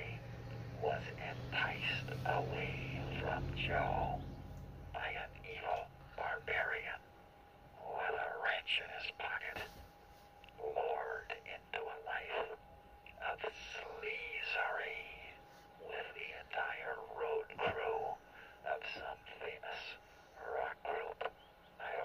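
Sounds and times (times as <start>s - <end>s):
filtered muffled singing voice: 0.0s - 7.1s, 7.8s - 9.8s, 10.5s - 22.0s
faint steady tone: 0.0s - 22.0s.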